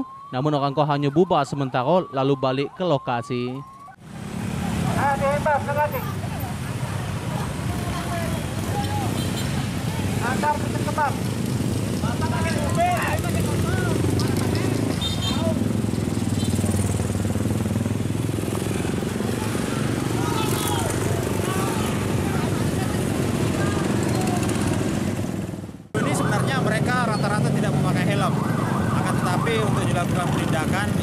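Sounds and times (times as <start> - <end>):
man speaking: 0.0 - 3.7
motorbike engines passing: 1.0 - 31.0
people shouting: 7.8 - 9.2, 19.3 - 22.6.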